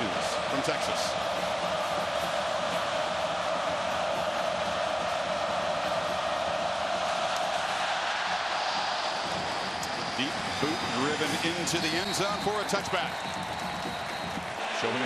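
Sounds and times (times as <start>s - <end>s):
stadium crowd cheering: 0.0s - 15.0s.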